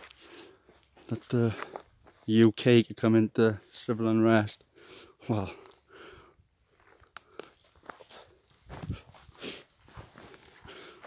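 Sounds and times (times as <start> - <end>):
footsteps on forest floor: 0.0 - 2.5, 5.4 - 11.0.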